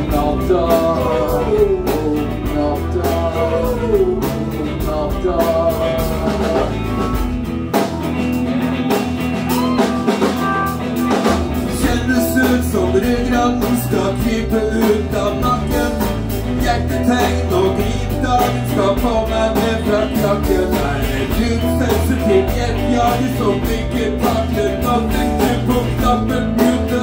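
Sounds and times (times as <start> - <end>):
man singing: 0.0 - 7.2, 11.6 - 27.0
live rock band playing: 0.0 - 27.0.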